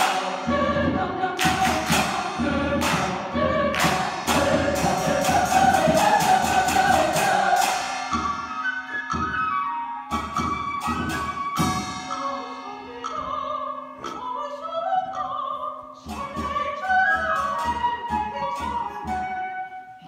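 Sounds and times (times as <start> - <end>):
sharp rhythmic hits: 0.0 - 14.3
choir singing with accompaniment: 0.0 - 19.4.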